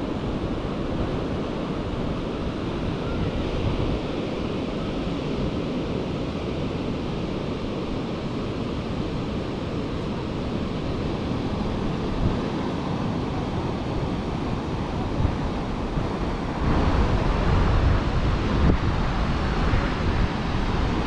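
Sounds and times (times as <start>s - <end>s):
ocean surf: 0.0s - 21.0s
wind rumbling on microphone: 0.0s - 21.0s.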